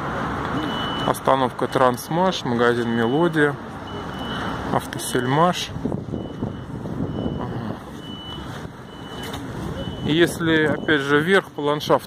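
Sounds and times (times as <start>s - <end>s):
high electronic beep: 0.6s - 1.9s, 6.2s - 11.4s.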